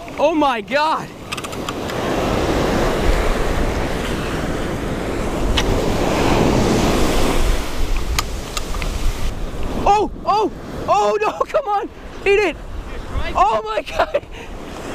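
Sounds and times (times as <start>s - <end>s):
wind buffeting microphone: 0.0s - 14.9s
surf breaking on beach: 0.9s - 14.9s
sharp clicks: 1.2s - 2.0s, 7.9s - 8.9s.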